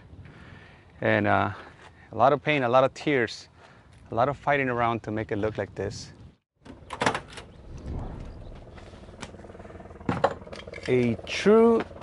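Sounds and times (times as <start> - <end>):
low rumble: 7.4 - 10.7.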